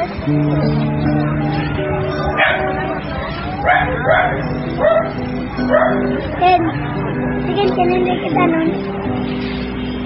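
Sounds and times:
background music: 0:00.0 - 0:10.0
dog barking: 0:02.4 - 0:02.7, 0:03.6 - 0:06.0.

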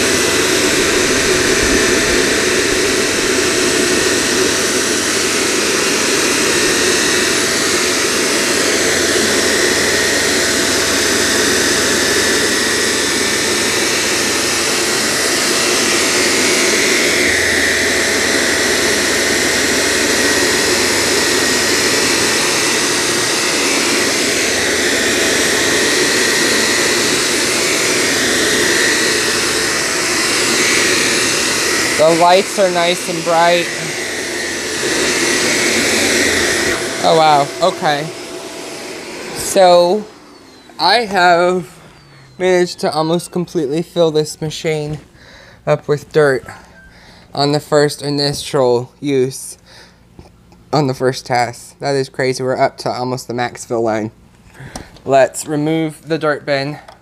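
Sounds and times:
vacuum cleaner running on rug: 0:00.0 - 0:50.0.

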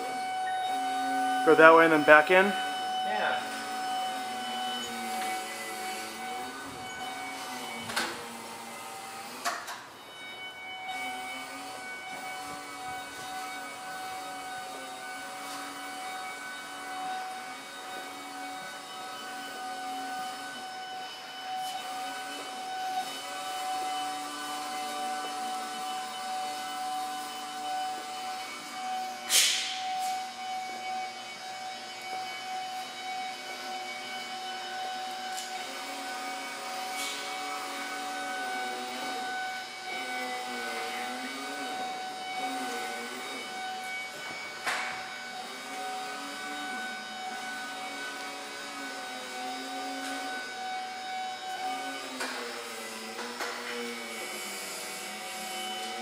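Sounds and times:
forklift motor whining: 0:00.0 - 0:56.0.

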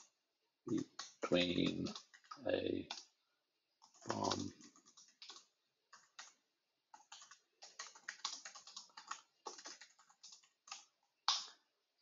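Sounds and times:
computer keyboard typing: 0:00.7 - 0:03.2, 0:03.8 - 0:11.6.

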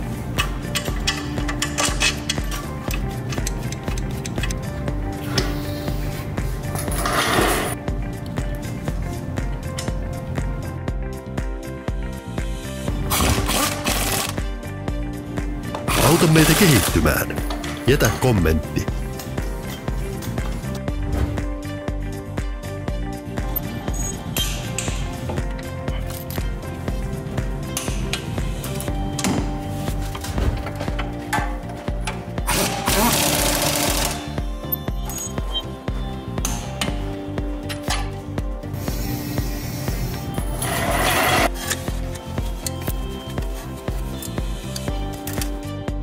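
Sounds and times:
background music: 0:00.0 - 0:46.0
air wrench running: 0:32.5 - 0:34.4.

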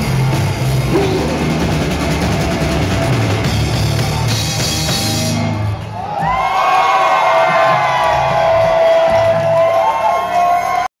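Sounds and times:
live rock band playing: 0:00.0 - 0:06.0
crowd cheering: 0:00.7 - 0:10.9.

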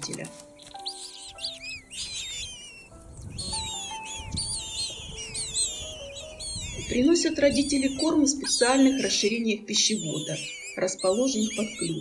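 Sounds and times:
nestlings begging calls: 0:00.0 - 0:12.0
slow background music: 0:00.0 - 0:12.0.

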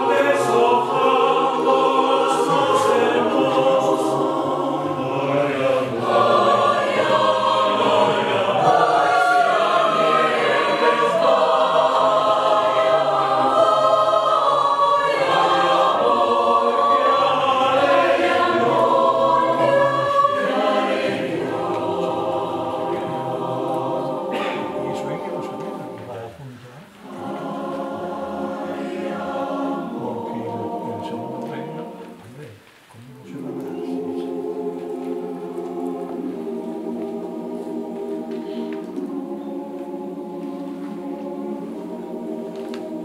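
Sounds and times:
mixed choir singing unaccompanied: 0:00.0 - 0:43.0.

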